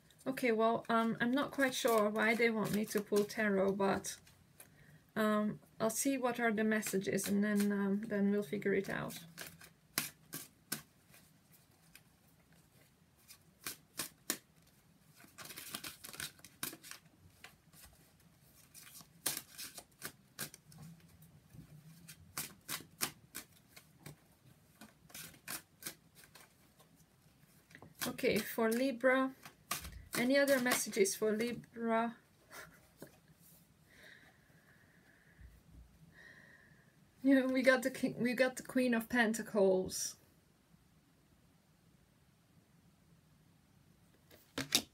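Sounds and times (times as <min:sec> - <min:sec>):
cards being shuffled: 0:00.8 - 0:04.2, 0:08.8 - 0:31.7, 0:44.3 - 0:44.9.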